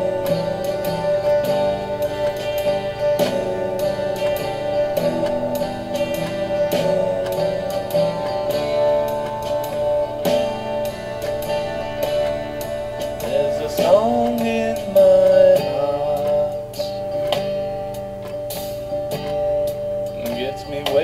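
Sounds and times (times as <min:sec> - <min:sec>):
guitar playing held notes: 0:00.0 - 0:21.0.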